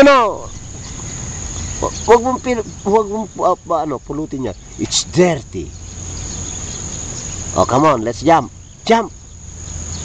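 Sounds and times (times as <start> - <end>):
insects droning: 0.0 - 10.0.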